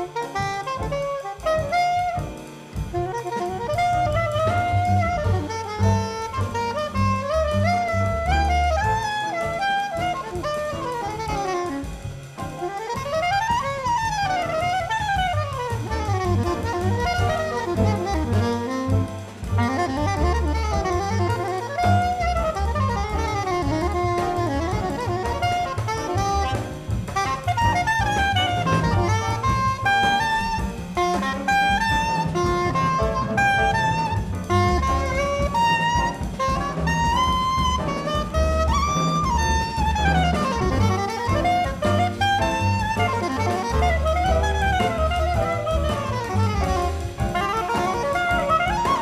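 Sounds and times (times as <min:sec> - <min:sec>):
drum kit: 0:00.0 - 0:49.0
low double bass notes: 0:00.0 - 0:49.0
soprano saxophone jazz melody: 0:00.0 - 0:49.0.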